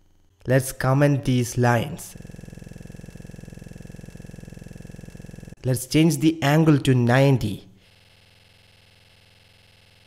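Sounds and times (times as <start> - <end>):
pulsing multi-tone buzz: 0.0 - 5.6, 7.8 - 10.0.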